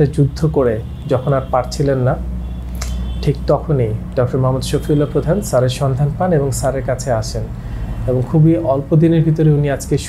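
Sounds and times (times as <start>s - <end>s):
man speaking: 0.0s - 2.2s, 3.2s - 10.0s
steady low hum: 0.0s - 10.0s.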